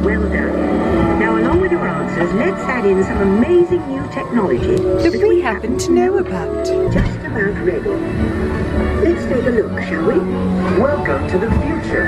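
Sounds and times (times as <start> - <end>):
music with long held chords: 0.0 - 12.0.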